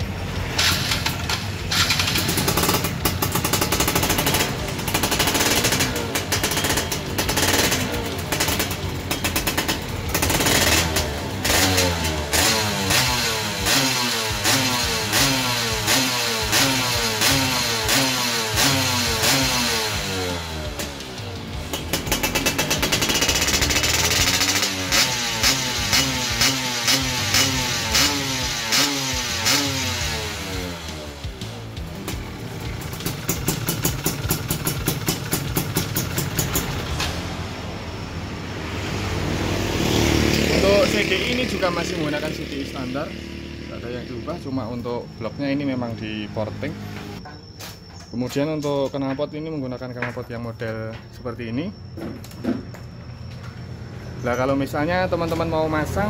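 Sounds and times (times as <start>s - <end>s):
two-stroke engine revving: 0.0s - 37.3s, 38.5s - 47.2s.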